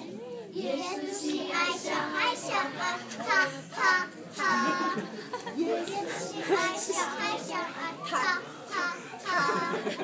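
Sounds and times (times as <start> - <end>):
children speaking: 0.0 - 10.0
children's song: 0.5 - 10.0.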